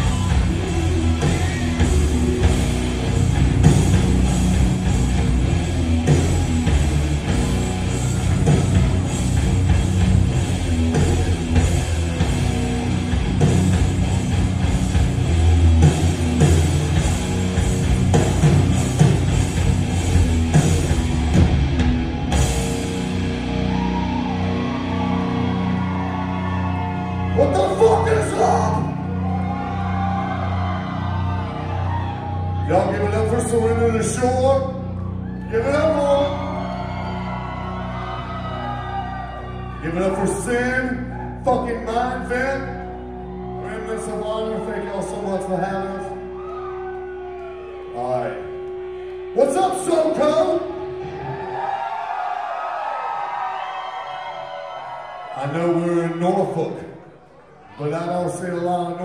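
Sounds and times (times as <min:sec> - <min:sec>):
live rock band playing: 0:00.0 - 0:40.6, 0:42.9 - 0:53.5.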